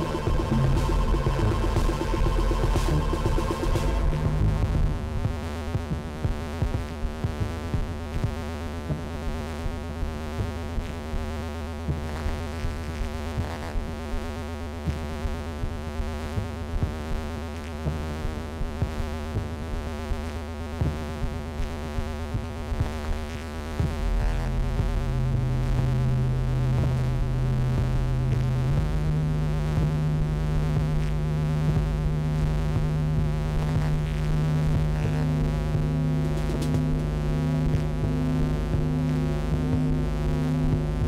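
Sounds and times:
low synth bass: 0.0s - 6.4s, 23.8s - 41.0s
synthesizer drones: 0.0s - 6.4s, 23.8s - 41.0s.

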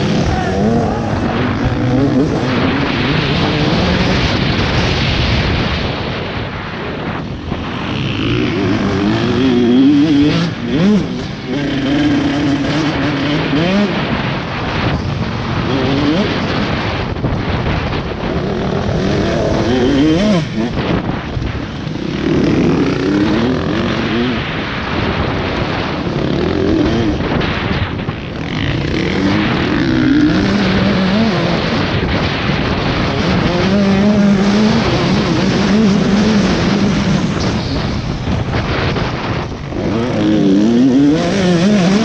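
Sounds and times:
dirt bike engine revving: 0.0s - 6.0s, 6.9s - 42.0s
wind rushing over microphone: 0.0s - 42.0s.

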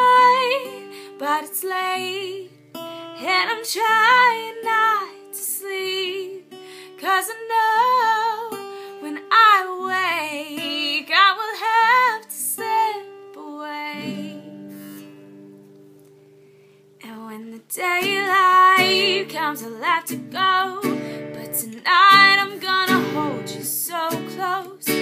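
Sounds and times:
woman singing: 0.0s - 2.6s, 3.2s - 14.7s, 17.0s - 25.0s
strummed acoustic guitar: 0.0s - 17.1s, 17.7s - 25.0s.

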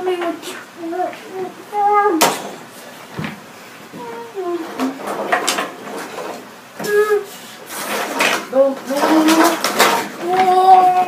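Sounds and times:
high-pitched wordless vocal cries: 0.0s - 2.3s, 4.0s - 5.0s, 6.8s - 7.5s, 10.2s - 11.0s
plastic toys clattering on wooden table: 4.6s - 6.5s, 7.7s - 11.0s.

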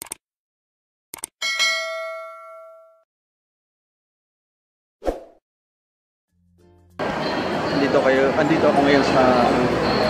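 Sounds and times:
notification bell ding: 1.4s - 3.0s.

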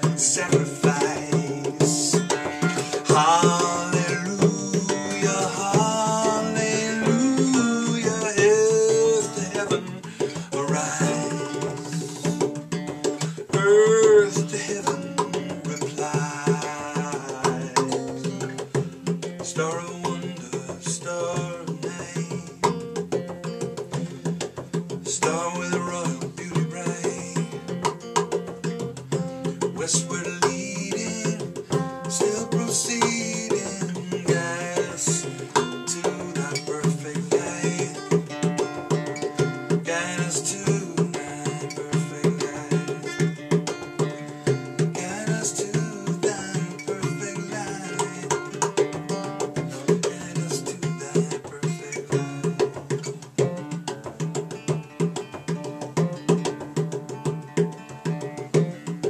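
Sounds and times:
acoustic guitar: 0.0s - 59.0s
hand percussion rhythm: 0.0s - 59.0s.

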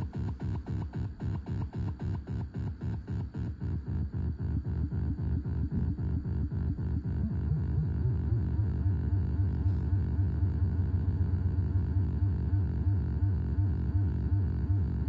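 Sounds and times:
pulsing feedback buzz drone: 0.0s - 15.0s.

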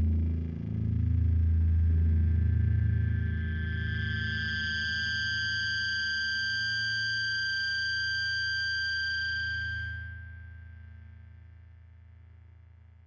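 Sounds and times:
low droning note: 0.0s - 5.4s.

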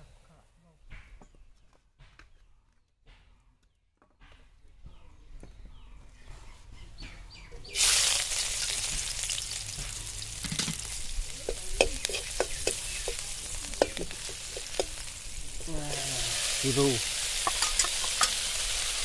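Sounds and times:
food sizzling in a pan: 7.7s - 19.0s
utensil clicking while stirring: 11.4s - 15.1s.

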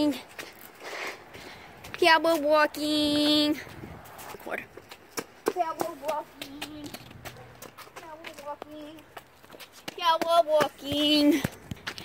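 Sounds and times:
faint footsteps: 0.0s - 12.0s.

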